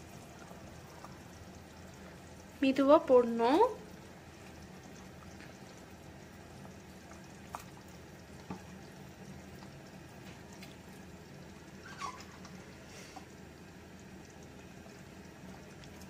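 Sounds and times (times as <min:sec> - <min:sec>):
curry bubbling in a pot: 0:00.0 - 0:16.0.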